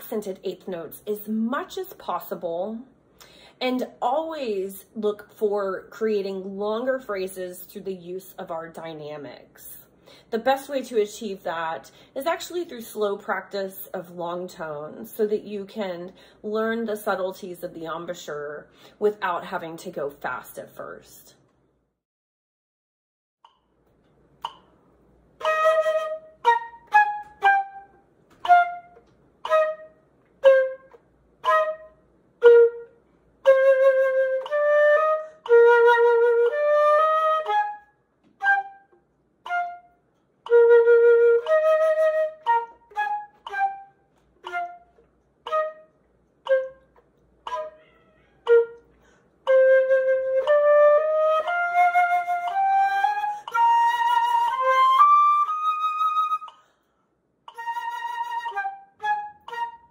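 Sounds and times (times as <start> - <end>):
flute playing: 25.4 - 46.9, 47.5 - 56.6, 57.5 - 59.9.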